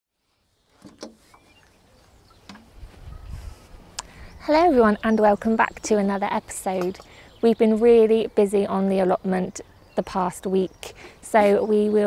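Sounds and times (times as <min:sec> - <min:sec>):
faint high bird chirps: 0:00.7 - 0:03.4.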